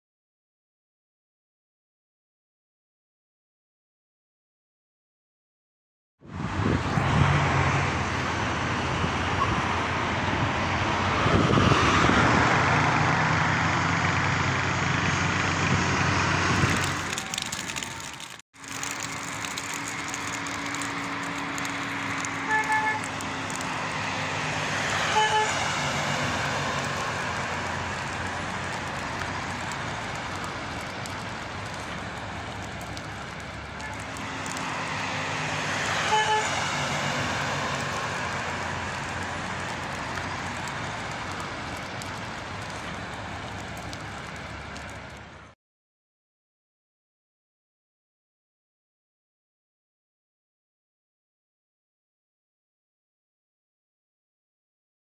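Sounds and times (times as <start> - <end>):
road traffic: 6.2 - 45.6
car horn toots: 22.4 - 23.1, 25.1 - 25.6, 36.0 - 36.6.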